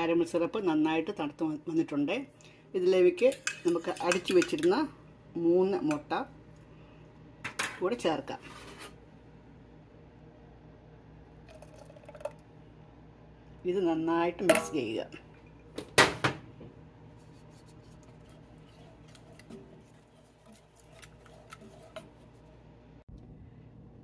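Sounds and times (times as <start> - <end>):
wooden spoon stirring: 17.0 - 22.8.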